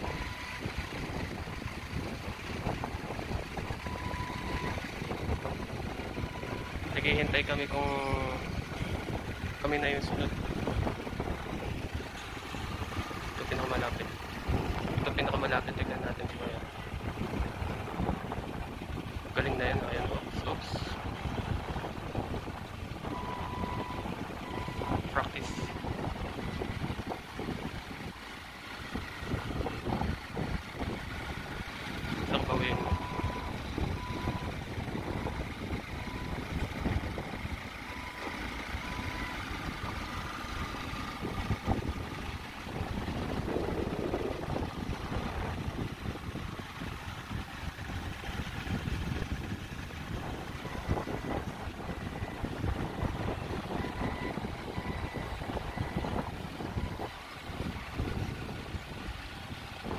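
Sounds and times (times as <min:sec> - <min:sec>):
forklift warning beeper: 0:00.0 - 0:01.5, 0:03.7 - 0:10.9, 0:12.4 - 0:16.6, 0:23.0 - 0:26.7, 0:32.2 - 0:42.2, 0:50.4 - 0:58.2
wind on microphone: 0:00.0 - 0:28.2, 0:28.8 - 0:40.0, 0:41.1 - 0:59.9
forklift engine running: 0:00.0 - 0:59.9.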